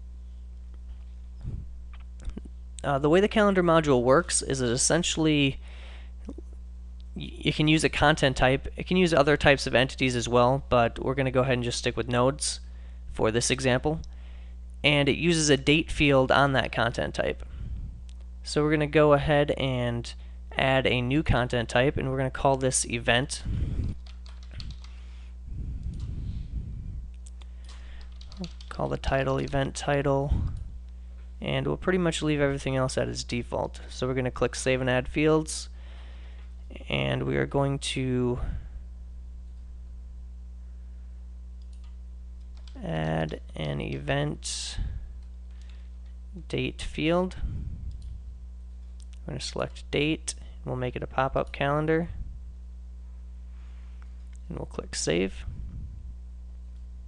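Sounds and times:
low electrical hum: 0.0s - 57.0s
keyboard keystrokes: 27.7s - 28.8s.

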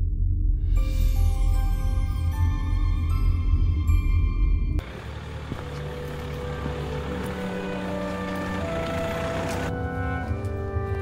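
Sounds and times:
background music: 0.6s - 11.0s
car driving on cobbles: 4.8s - 11.0s.

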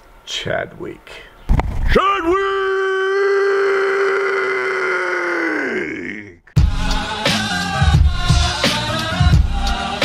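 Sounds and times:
man yelling a name: 1.9s - 6.4s.

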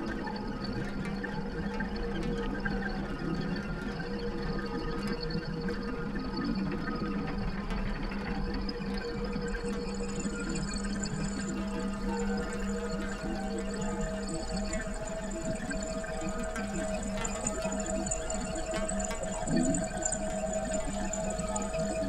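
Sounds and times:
layered humming drone: 9.6s - 22.0s.

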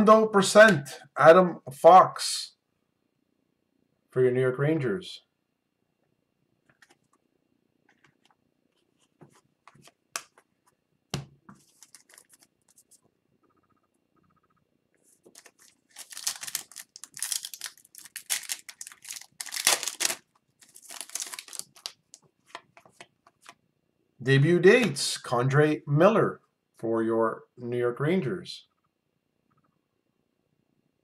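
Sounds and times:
clicks and taps of cards: 9.2s - 10.5s
foil wrapper crinkling and tearing: 11.6s - 12.5s, 15.3s - 22.6s.

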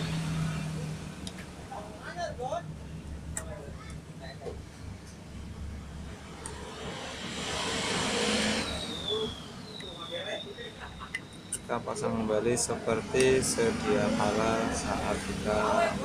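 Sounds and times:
motor vehicle passing: 0.0s - 1.5s, 5.8s - 9.8s.

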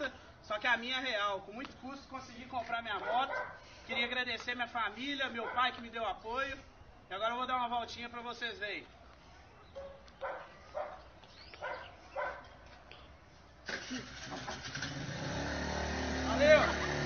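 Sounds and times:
motorbike engine starting and running: 13.6s - 17.0s.

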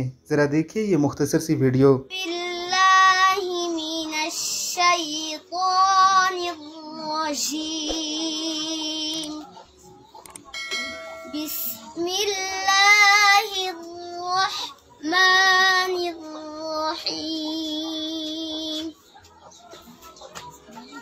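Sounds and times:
girl chanting recitation: 2.1s - 9.5s, 11.3s - 19.0s.

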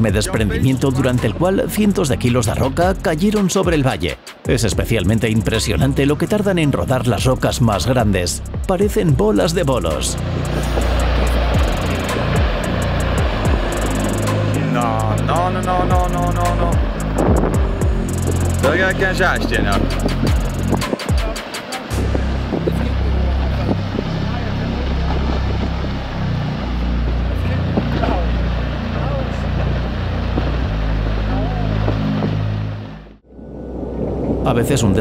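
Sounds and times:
deep rumble of tumbling rock: 27.0s - 32.5s.

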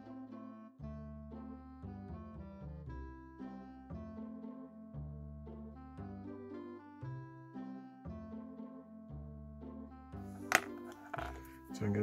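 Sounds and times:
man talking: 11.8s - 12.0s.

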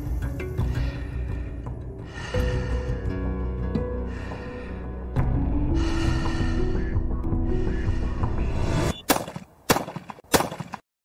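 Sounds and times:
background music: 0.0s - 9.0s
shotgun shots: 9.0s - 10.8s.

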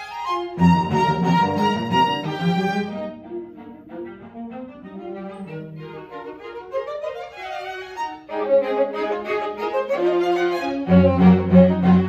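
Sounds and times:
string quartet playing: 0.0s - 12.0s.

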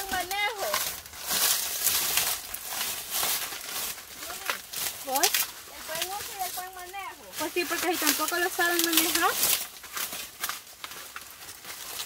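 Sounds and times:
person calling: 0.0s - 0.8s
dry corn stalks rustling: 0.0s - 12.0s.

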